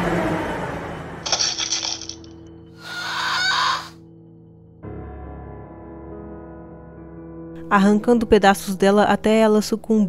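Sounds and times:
bird-like squawk: 0:02.8 - 0:04.0.

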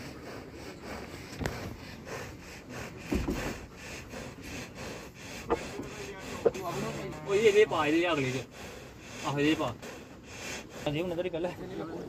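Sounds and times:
cattle rubbing on wooden planks: 0:00.0 - 0:09.8.

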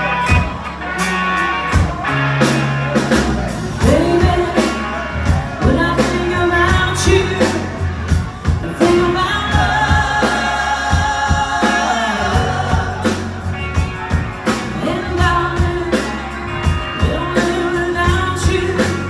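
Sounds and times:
drums keeping steady beat: 0:00.0 - 0:19.0
live rock band playing: 0:00.0 - 0:19.0
lead vocal singing: 0:03.8 - 0:19.0.

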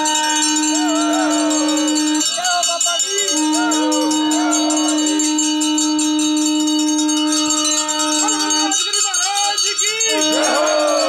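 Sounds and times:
bells ringing: 0:00.0 - 0:11.0
conch shell blown: 0:00.0 - 0:11.0.

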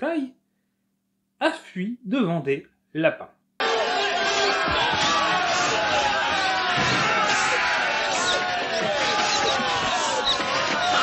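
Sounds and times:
men shouting and screaming: 0:03.6 - 0:11.0.

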